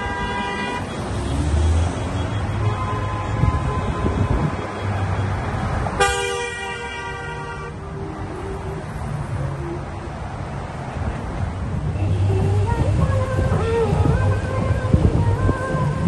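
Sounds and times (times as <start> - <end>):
car horns honking: 0.0 - 7.8, 11.8 - 14.0
passing car engines: 0.0 - 16.0.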